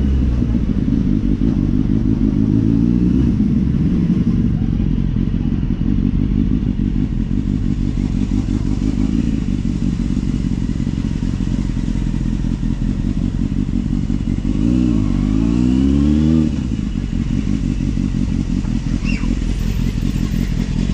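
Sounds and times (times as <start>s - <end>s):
motorcycle engine running: 0.0s - 20.9s.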